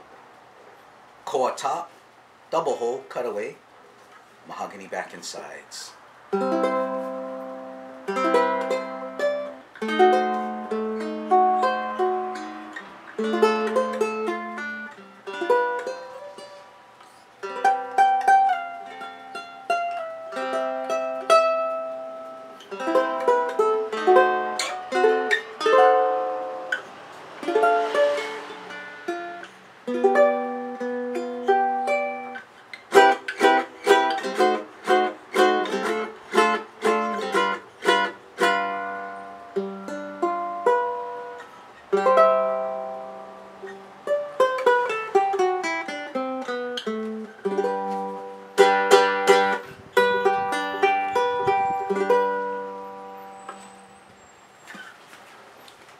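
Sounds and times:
ukulele strummed chords: 0:06.3 - 0:53.4
ukulele fingerstyle melody: 0:06.3 - 0:54.0.

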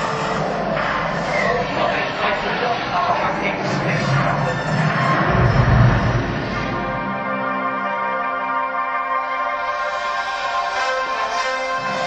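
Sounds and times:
action movie music: 0:00.0 - 0:12.0
action movie sound effects: 0:00.0 - 0:12.0.

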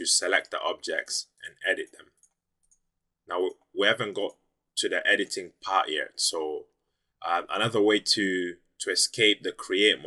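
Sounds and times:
man speaking: 0:00.0 - 0:02.1, 0:03.3 - 0:10.0
computer mouse clicks: 0:02.1 - 0:02.9.

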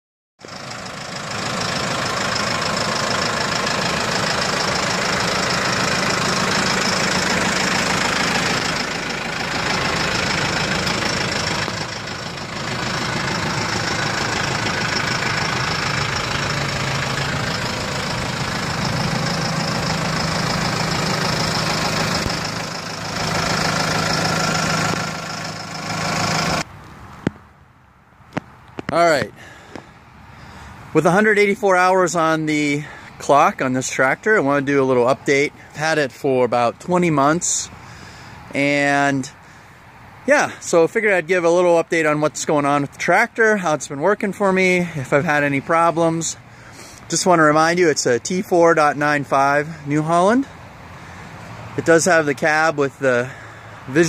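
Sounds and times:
tractor diesel engine idling: 0:00.4 - 0:26.7, 0:28.9 - 0:54.0.

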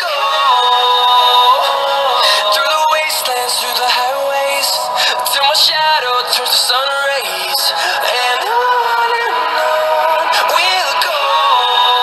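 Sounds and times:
pop song from phone loudspeaker: 0:00.0 - 0:12.0.

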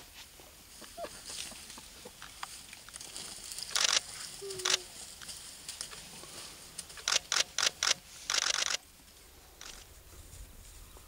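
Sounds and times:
camera shutter clicks: 0:03.7 - 0:04.8, 0:07.0 - 0:08.8, 0:09.6 - 0:09.8.

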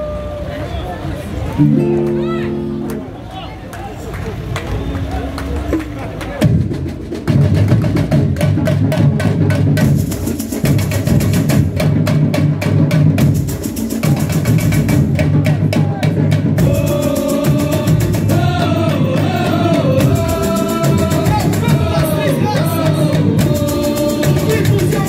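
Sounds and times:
samba drum section playing: 0:05.6 - 0:25.0.

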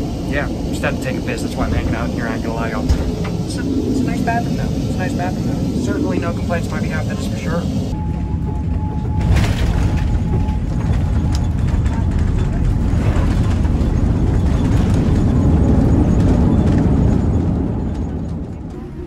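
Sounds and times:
low rumble in airliner cabin: 0:00.0 - 0:19.0.

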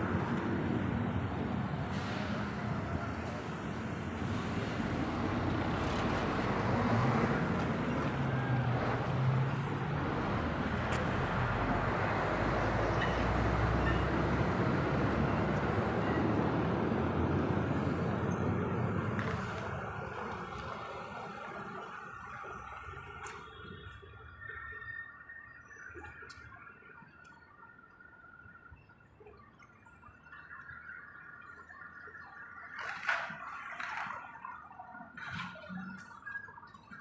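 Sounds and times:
street traffic noise: 0:00.0 - 0:37.0.

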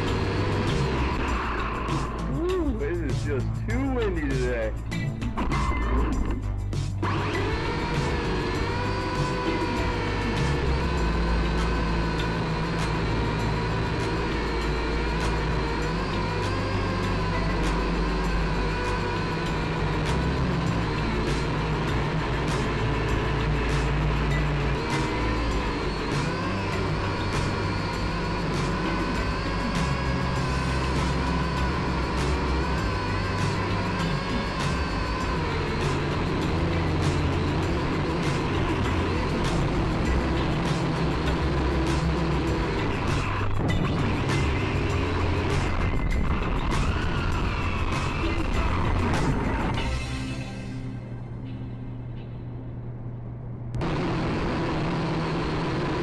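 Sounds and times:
background music with beat: 0:00.0 - 0:52.5
drone propellers whining: 0:00.0 - 0:56.0.

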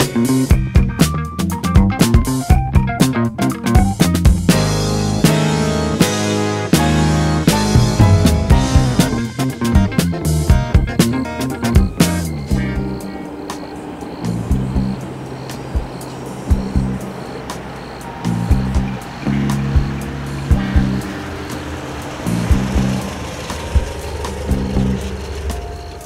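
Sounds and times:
funk music with bass guitar: 0:00.0 - 0:13.3, 0:14.3 - 0:17.1, 0:18.1 - 0:25.7
vehicle engine: 0:03.8 - 0:26.0
tyres on wet road: 0:04.5 - 0:26.0.

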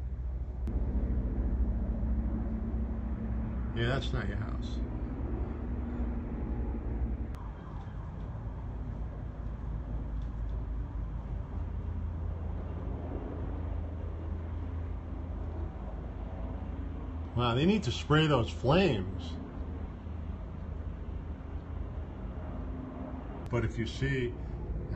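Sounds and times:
helicopter rumble: 0:00.0 - 0:24.9.

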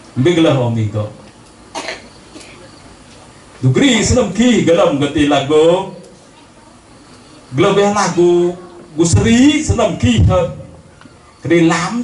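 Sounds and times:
man coughing: 0:01.7 - 0:02.6.

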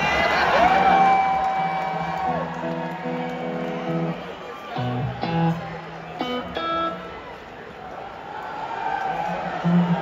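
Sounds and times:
crowd cheering woo: 0:00.0 - 0:10.0
band guitars ringing: 0:02.4 - 0:07.3.

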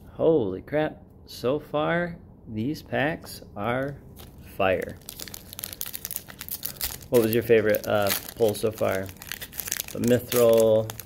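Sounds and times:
foil wrapper tearing and crinkling: 0:04.2 - 0:11.0.

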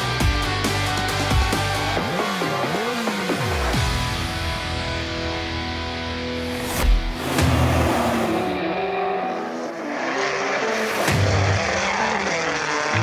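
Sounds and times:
background music: 0:00.0 - 0:13.0
rally car engine: 0:00.0 - 0:13.0.

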